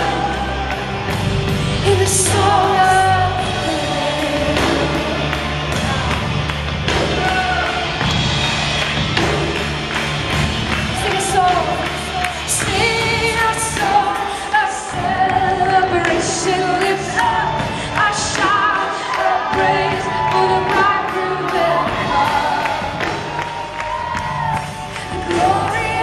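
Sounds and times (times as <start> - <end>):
people singing: 0.0 - 6.1, 11.1 - 23.4
band playing worship music: 0.0 - 26.0
steady drum beat: 0.0 - 26.0.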